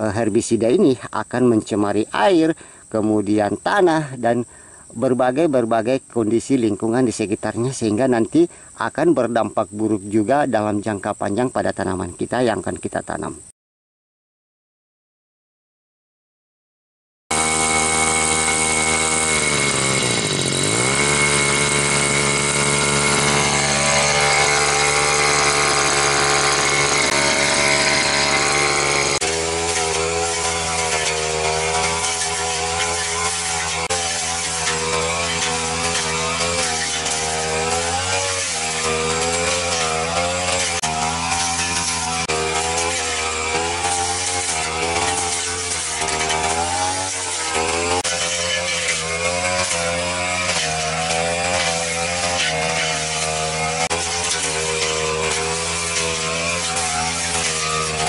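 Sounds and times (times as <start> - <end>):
brush cutter engine running: 17.3 - 58.0.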